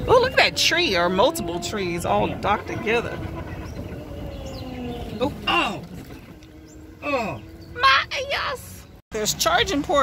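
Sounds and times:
road and wind rumble: 0.0s - 10.0s.

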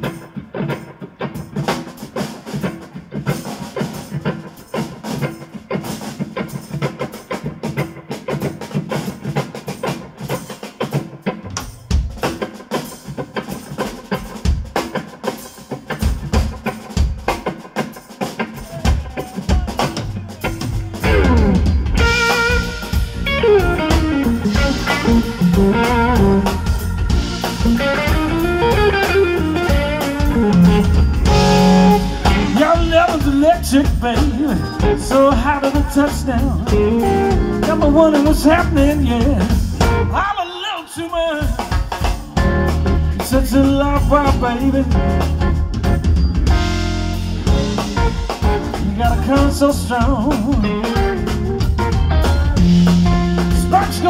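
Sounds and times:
drums and bass groove: 0.0s - 54.0s
live blues band playing: 0.0s - 54.0s.

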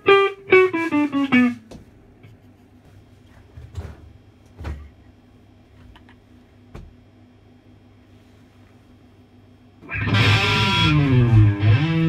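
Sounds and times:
guitar amplifier hum: 0.0s - 12.0s.

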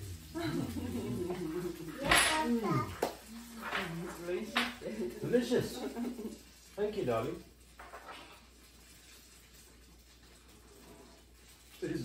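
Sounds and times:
tableware clicks: 2.0s - 2.6s, 3.6s - 4.8s.

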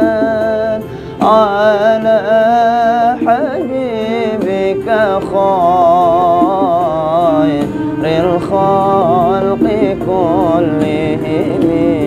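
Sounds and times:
man singing devotional song: 0.0s - 12.0s
steady held backing tones: 0.0s - 12.0s.

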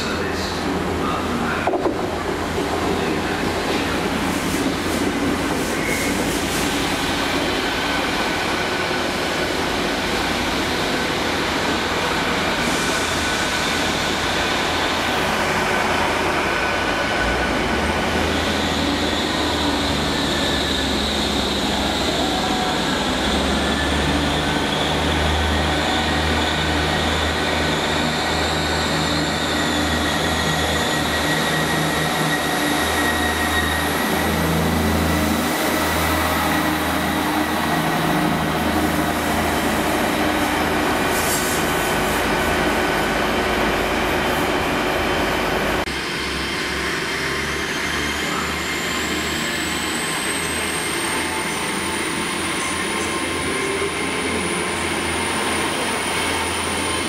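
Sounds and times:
train wheels rumbling on rails: 0.0s - 57.0s.

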